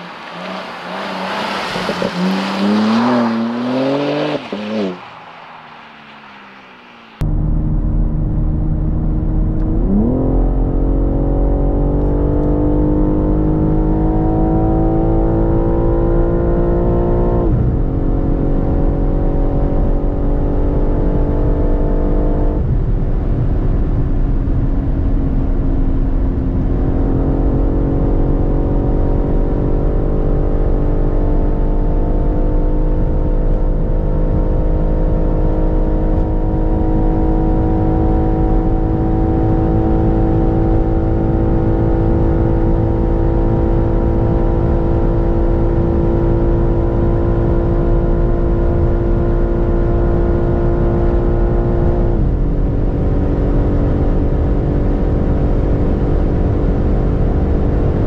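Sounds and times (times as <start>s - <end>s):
car engine at full throttle: 0.0s - 58.0s.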